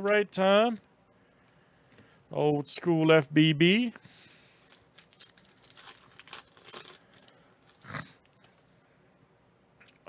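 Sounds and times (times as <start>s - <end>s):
foil wrapper crinkling: 4.5s - 8.7s.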